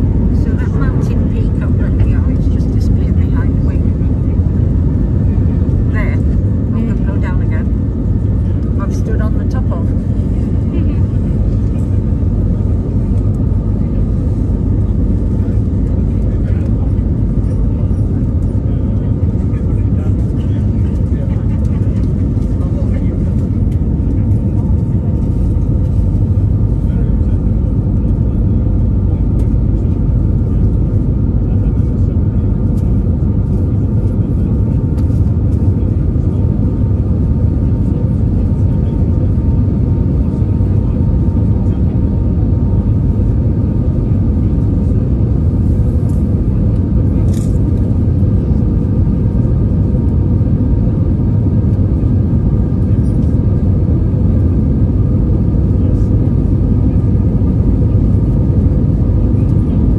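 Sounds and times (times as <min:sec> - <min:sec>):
faint voices: 0:00.0 - 0:59.9
jet engines rumbling: 0:00.0 - 0:59.9.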